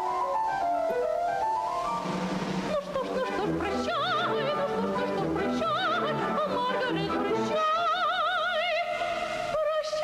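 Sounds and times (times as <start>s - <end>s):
instrumental accompaniment: 0.0s - 7.6s
operatic soprano singing: 2.6s - 10.0s.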